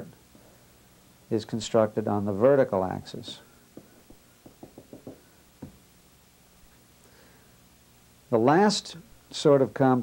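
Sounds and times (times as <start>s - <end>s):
pencil tapping on paper: 3.3s - 5.8s.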